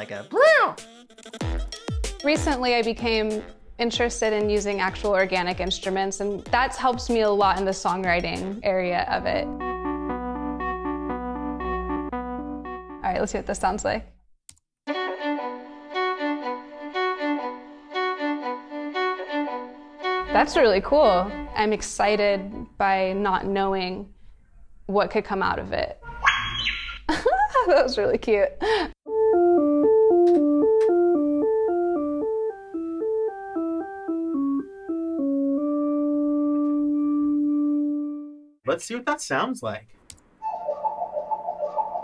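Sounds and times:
synthesizer keyboard notes: 0:09.2 - 0:13.6, 0:29.0 - 0:38.5, 0:40.4 - 0:42.0
synthesized violin melody: 0:14.9 - 0:22.7, 0:29.1 - 0:38.4.

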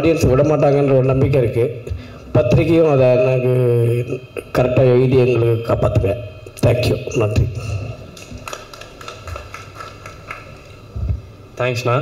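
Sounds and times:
faint hall ambience: 0:00.0 - 0:12.0.

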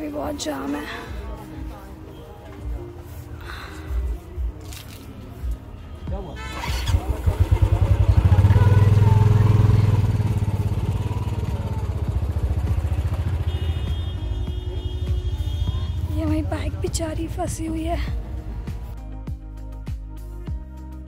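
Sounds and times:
motorcycle engine running: 0:06.4 - 0:18.3.

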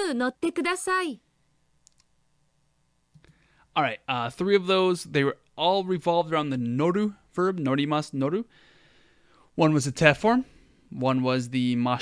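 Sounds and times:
faint clicks: 0:01.8 - 0:02.1, 0:03.1 - 0:03.4.

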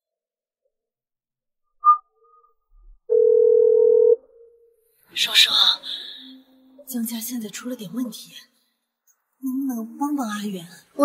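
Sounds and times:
telephone ringback tone: 0:03.1 - 0:04.2.

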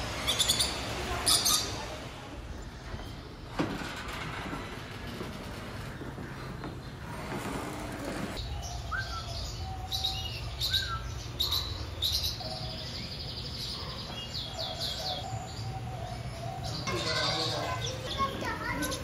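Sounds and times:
small birds chirping: 0:00.0 - 0:03.6, 0:08.3 - 0:19.0.

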